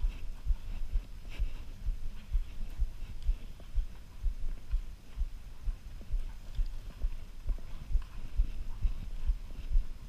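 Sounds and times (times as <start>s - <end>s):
horse hooves thudding on sand: 0.0s - 10.0s.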